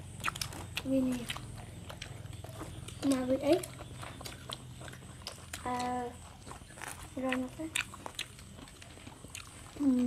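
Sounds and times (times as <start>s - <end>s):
faint chewing: 0.0s - 10.0s
steady low hum: 0.0s - 10.0s.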